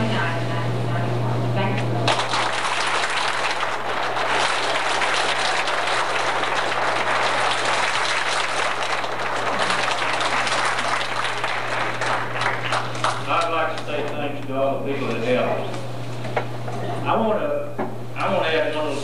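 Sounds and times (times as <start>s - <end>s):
audience applauding: 2.1s - 14.2s.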